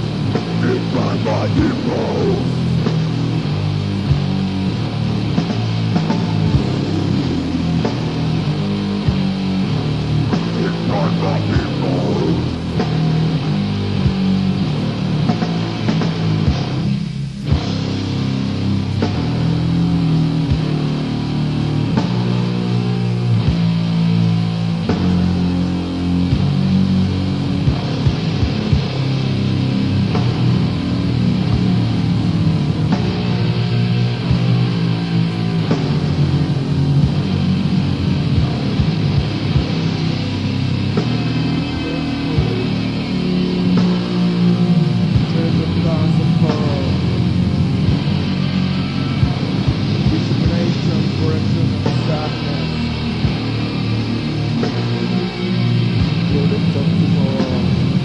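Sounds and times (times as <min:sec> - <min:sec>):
bass and drums: 0:00.0 - 0:58.0
death metal music: 0:00.0 - 0:58.0
distorted guitar riffing: 0:00.0 - 0:58.0.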